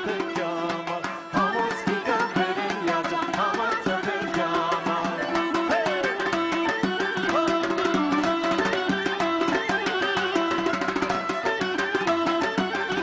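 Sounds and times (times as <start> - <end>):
hand drum beat: 0.0 - 13.0.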